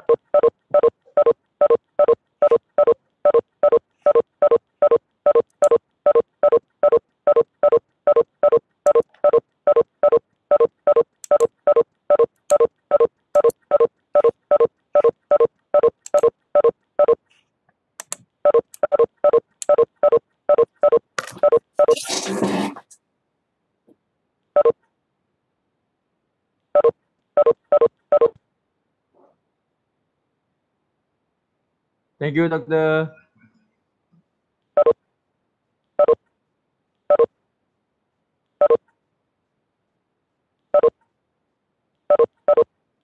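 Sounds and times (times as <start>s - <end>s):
short electronic beeps: 0.0s - 17.2s, 18.5s - 22.0s, 26.8s - 28.3s.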